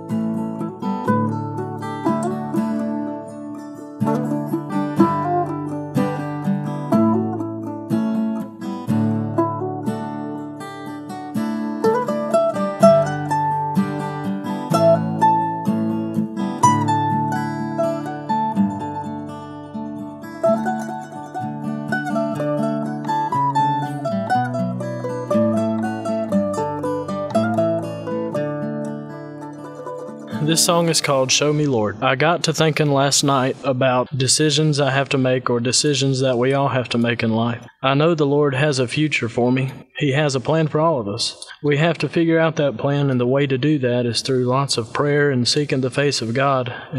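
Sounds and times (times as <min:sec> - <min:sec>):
plucked mandolin melody: 0:00.0 - 0:33.4
guitar chords: 0:00.0 - 0:33.5.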